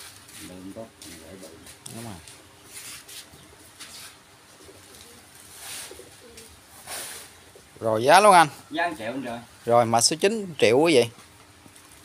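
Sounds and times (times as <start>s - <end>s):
dove cooing: 4.5s - 7.8s.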